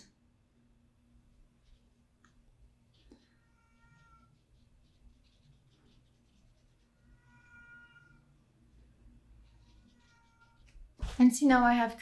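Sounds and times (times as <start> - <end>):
cat meowing: 7.2 - 8.3.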